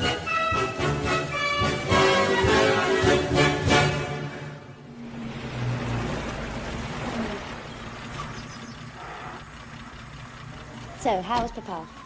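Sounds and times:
car engine running: 0:04.9 - 0:12.0
car rolling on gravel: 0:05.1 - 0:12.0.

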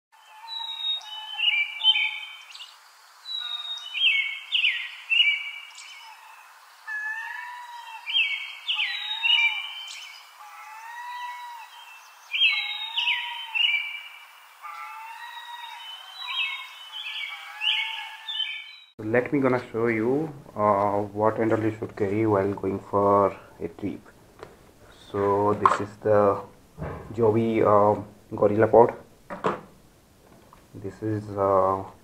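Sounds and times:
low rising-and-falling bird call: 0:00.2 - 0:18.9
birds singing: 0:00.2 - 0:29.9.

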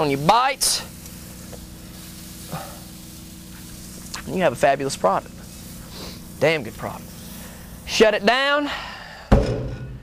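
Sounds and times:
meat sizzling on a grill: 0:00.0 - 0:08.8.

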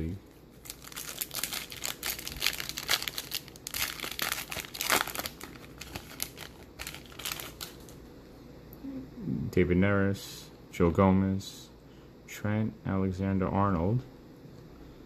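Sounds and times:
foil wrapper tearing and crinkling: 0:00.6 - 0:08.0.

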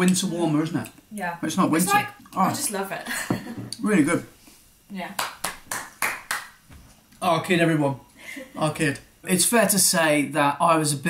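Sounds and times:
hand claps: 0:05.2 - 0:06.6.

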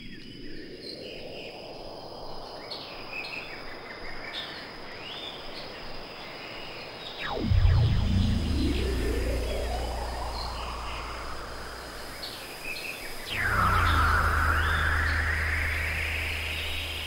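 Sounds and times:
low bass drone: 0:07.2 - 0:17.0
synthesizer pitch glide: 0:07.2 - 0:17.0.

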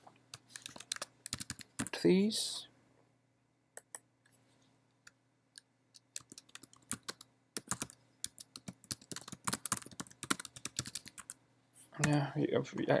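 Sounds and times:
typing on computer keyboard: 0:00.3 - 0:01.9, 0:06.0 - 0:11.4.

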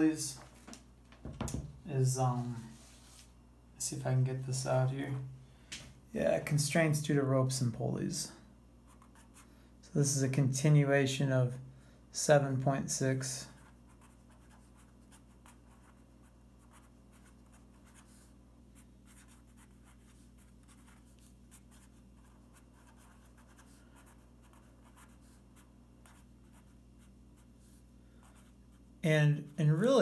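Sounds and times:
low steady hum: 0:00.0 - 0:30.0
pen scratching on paper: 0:13.6 - 0:27.7.

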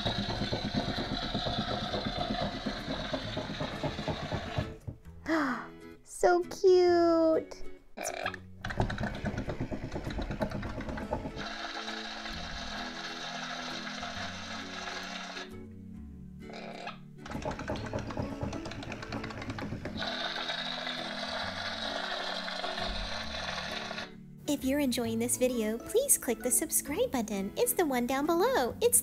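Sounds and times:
toy walking mechanism clatter: 0:08.6 - 0:15.5, 0:17.2 - 0:24.1.

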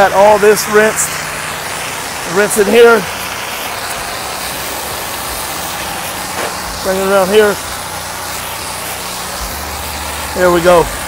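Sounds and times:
person speaking: 0:00.0 - 0:01.2, 0:02.2 - 0:03.2, 0:06.7 - 0:07.7
pressure washer spraying water: 0:00.0 - 0:11.0
washer engine running: 0:00.0 - 0:11.0.

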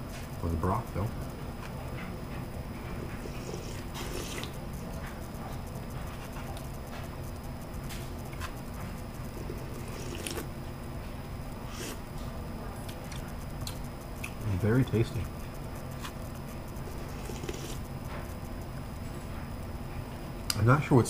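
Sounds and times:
low room hum: 0:00.0 - 0:21.0.

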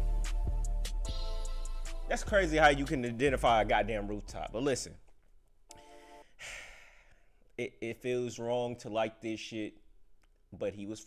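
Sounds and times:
breathy sigh: 0:05.8 - 0:07.3.

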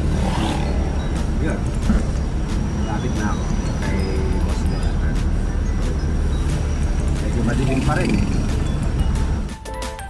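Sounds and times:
van engine rumble: 0:00.0 - 0:09.6
road noise: 0:00.0 - 0:10.0.

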